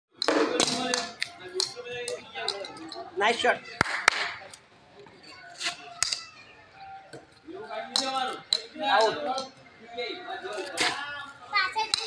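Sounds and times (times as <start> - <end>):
ball bouncing on concrete: 0.2 - 2.6
ball striking plastic bat: 0.2 - 2.6, 7.9 - 9.5
children's voices: 4.5 - 6.9, 11.4 - 12.0.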